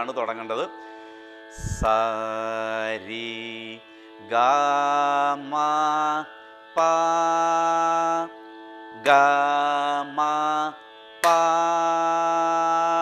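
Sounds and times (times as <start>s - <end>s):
steady drone: 0.0s - 13.0s
man singing held notes: 1.6s - 3.8s.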